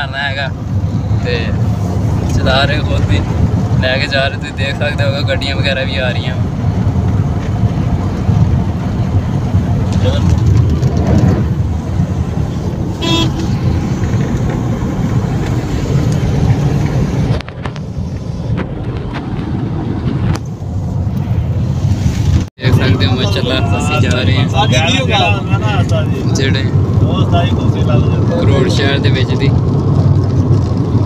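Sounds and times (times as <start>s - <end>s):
car engine and tyres rumbling: 0.0s - 31.0s.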